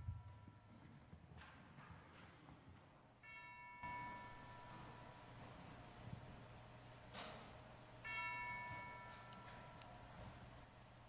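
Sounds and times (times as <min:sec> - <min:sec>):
bell-like chime ringing: 0:03.2 - 0:05.4, 0:08.0 - 0:09.8.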